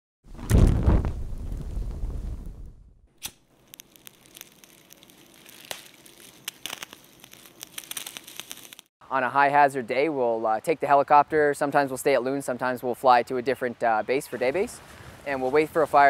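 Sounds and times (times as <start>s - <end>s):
whoosh of flames: 0.3s - 3.0s
fire crackling and popping: 0.3s - 8.9s
sharp snap: 3.2s - 3.4s.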